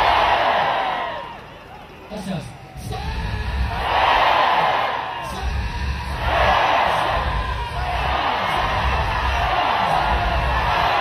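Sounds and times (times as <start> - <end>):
crowd crying out and praying: 0.0 - 11.0.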